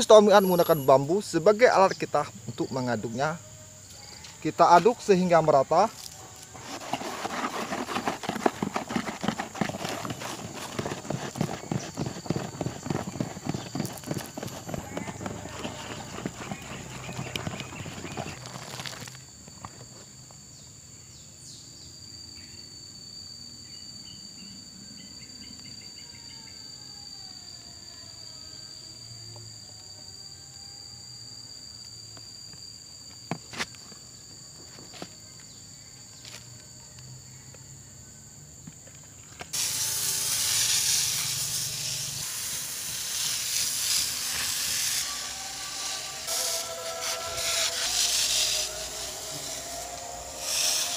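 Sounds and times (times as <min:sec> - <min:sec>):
steady high whine: 0:39.6 - 0:50.9.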